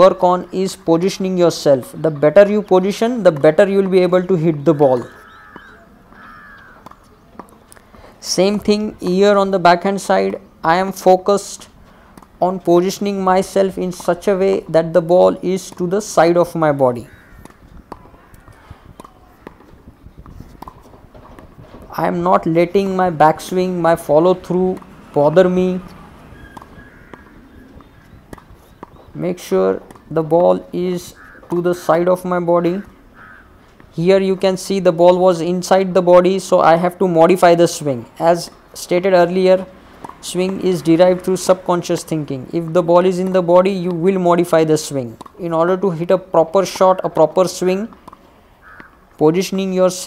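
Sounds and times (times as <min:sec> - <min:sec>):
bird calling: 0:00.0 - 0:08.2, 0:13.0 - 0:34.1, 0:47.9 - 0:49.2
low background noise: 0:00.0 - 0:50.0
tennis ball bouncing on court: 0:02.2 - 0:07.7, 0:12.1 - 0:35.2, 0:38.5 - 0:49.7
racket striking tennis ball: 0:02.5 - 0:07.7, 0:12.1 - 0:34.0, 0:38.4 - 0:49.6.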